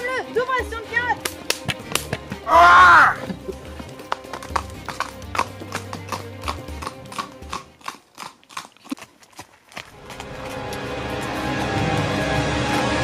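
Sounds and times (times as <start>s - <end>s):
background music: 0.0s - 7.8s, 9.9s - 13.0s
horse hooves clip-clopping on road: 0.0s - 12.2s.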